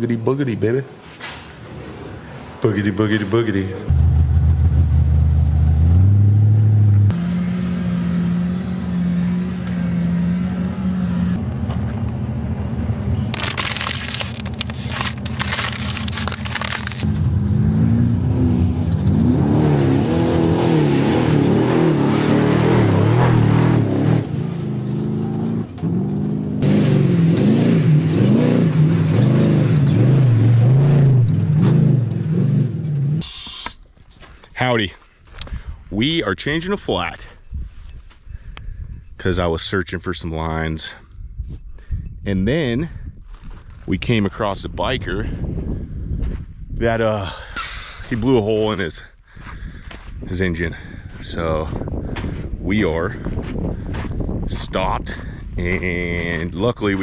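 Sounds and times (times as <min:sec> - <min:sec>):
truck engine running and revving: 0:03.9 - 0:33.2.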